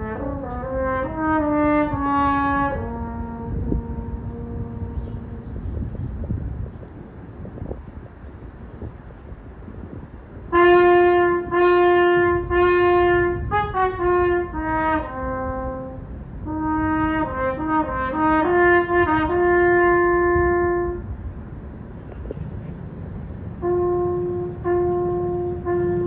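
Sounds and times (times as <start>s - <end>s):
french horn playing: 0.0s - 5.8s, 10.5s - 21.1s, 23.6s - 26.0s
low background rumble: 0.0s - 26.0s.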